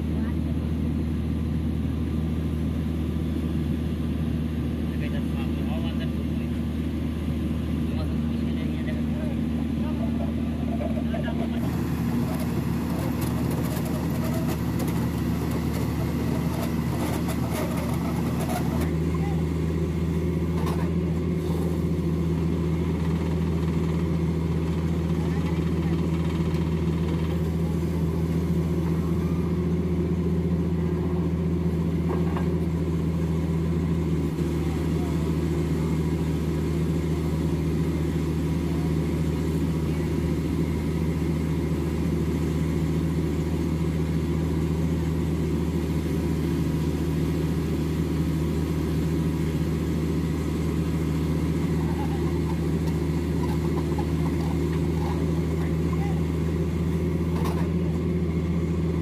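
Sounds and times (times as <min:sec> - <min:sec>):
diesel engine droning: 0:00.0 - 0:59.0.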